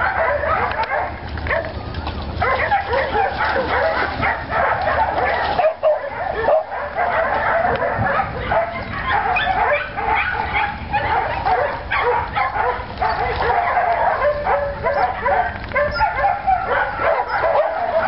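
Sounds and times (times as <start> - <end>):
dogs yipping and whining: 0.0 - 18.0.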